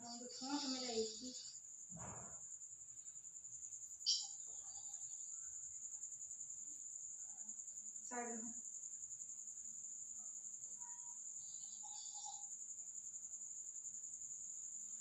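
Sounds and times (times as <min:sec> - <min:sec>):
high-pitched insect trill: 0:00.0 - 0:15.0.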